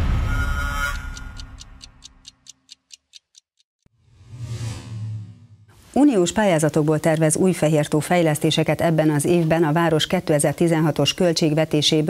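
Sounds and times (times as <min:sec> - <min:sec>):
clock-like ticking: 0:00.8 - 0:03.7.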